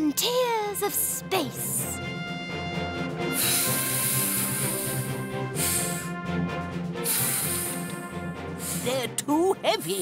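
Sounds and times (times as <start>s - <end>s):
background music: 0.0s - 10.0s
cartoon hissing air puffs: 3.4s - 6.1s, 7.0s - 7.9s.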